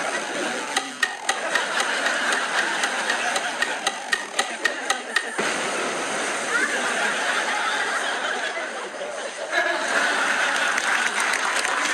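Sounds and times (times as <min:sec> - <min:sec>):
electronic keyboard clicking beat: 0:00.6 - 0:05.4.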